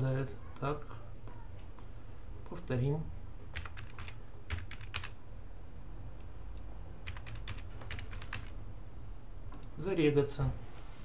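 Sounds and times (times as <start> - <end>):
computer keyboard keys tapping: 3.5 - 5.2, 7.0 - 8.6.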